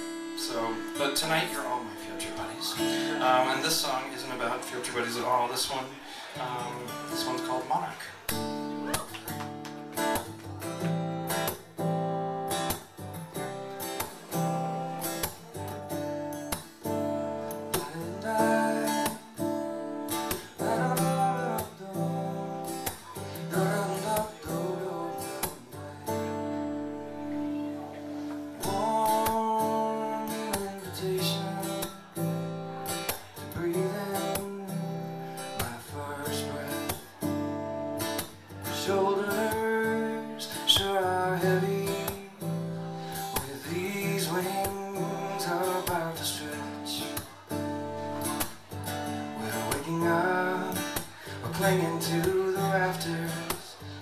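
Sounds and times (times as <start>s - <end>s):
acoustic guitar picking: 0.0s - 54.0s.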